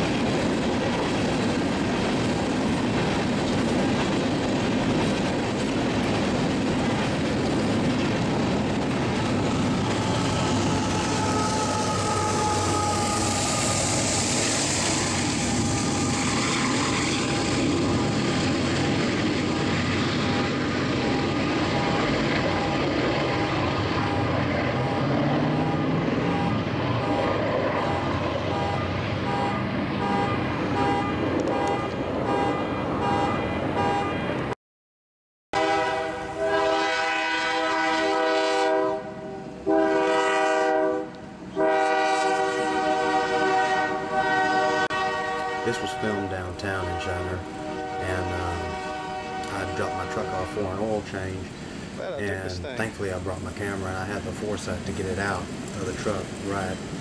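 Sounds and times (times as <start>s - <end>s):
freight train rumbling past: 0.0s - 34.6s, 35.6s - 57.0s
train horn blasts: 10.4s - 16.2s, 21.7s - 34.2s, 35.6s - 50.9s.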